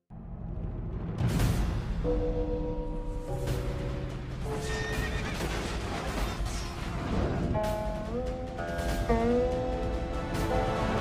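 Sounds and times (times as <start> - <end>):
dramatic title music: 0.1 - 11.0.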